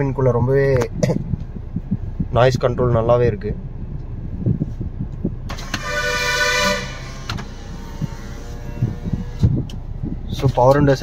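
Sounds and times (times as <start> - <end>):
diesel engine idling: 3.6 - 10.4
car horn: 5.5 - 9.4.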